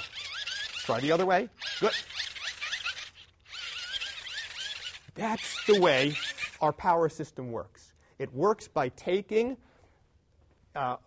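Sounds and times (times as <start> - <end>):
hand-cranked generator whine: 0.0 - 6.8.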